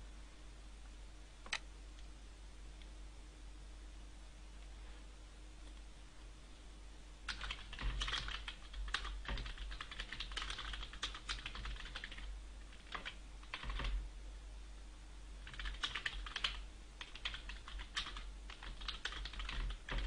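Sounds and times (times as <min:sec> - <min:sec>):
typing on computer keyboard: 0:07.3 - 0:14.0, 0:15.4 - 0:20.0.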